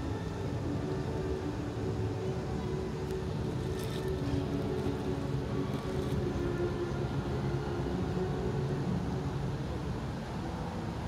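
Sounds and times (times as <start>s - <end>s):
distant city rumble: 0.0s - 11.0s.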